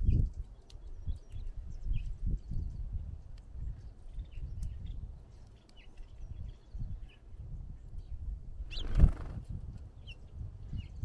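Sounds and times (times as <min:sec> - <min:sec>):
bird wings fluttering: 0:08.7 - 0:09.6.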